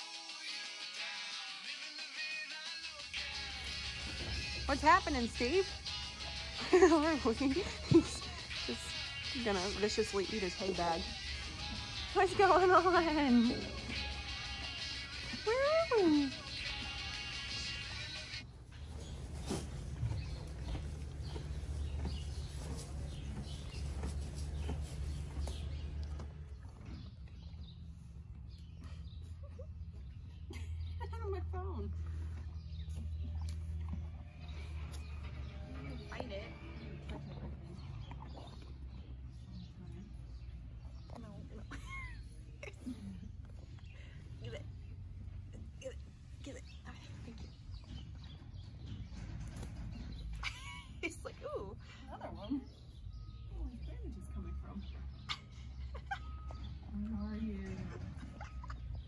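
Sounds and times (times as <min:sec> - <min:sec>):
horse crunching hay: 0:18.7 - 0:26.6.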